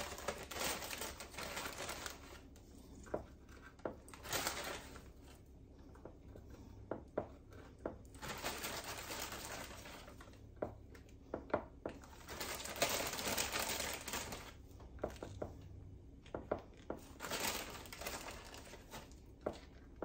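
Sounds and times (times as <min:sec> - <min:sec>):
plastic bag crinkling: 0:00.0 - 0:02.5, 0:04.1 - 0:05.3, 0:08.1 - 0:10.3, 0:12.0 - 0:14.6, 0:17.1 - 0:19.2.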